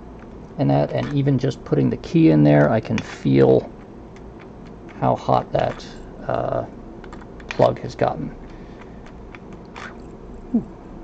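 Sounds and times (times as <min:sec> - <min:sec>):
box fan humming: 0:00.0 - 0:11.0.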